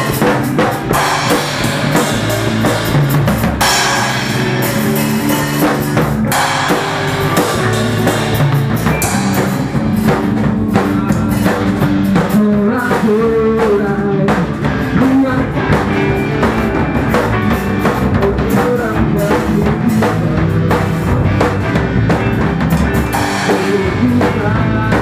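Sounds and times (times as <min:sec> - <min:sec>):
drum kit with cymbals: 0:00.0 - 0:25.0
electric guitar: 0:00.0 - 0:25.0
person singing: 0:10.5 - 0:21.1, 0:23.2 - 0:25.0.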